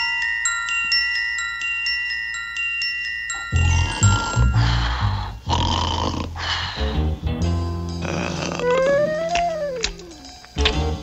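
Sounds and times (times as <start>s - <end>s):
cartoon snoring: 3.6s - 6.4s, 8.0s - 10.4s
soft background music: 3.6s - 11.0s
gliding musical tone: 8.5s - 10.5s.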